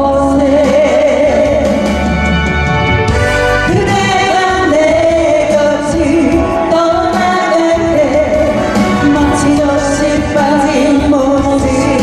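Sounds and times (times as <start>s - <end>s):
backing music: 0.0s - 12.0s.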